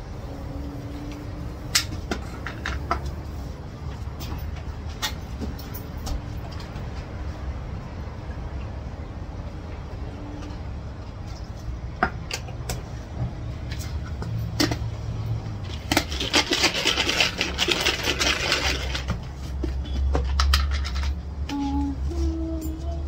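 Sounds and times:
jar being shaken: 15.7s - 19.1s.

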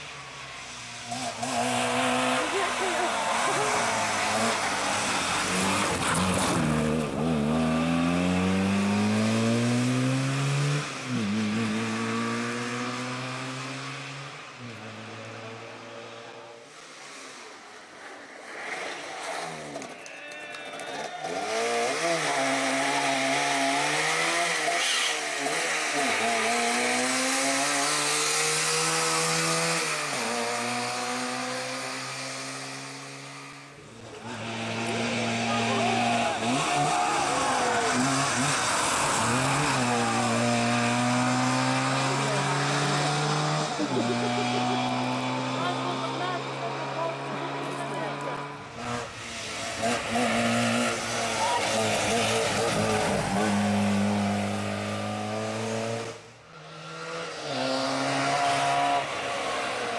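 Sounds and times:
two-stroke engine revving: 1.1s - 14.1s, 21.3s - 33.4s, 34.0s - 59.2s.

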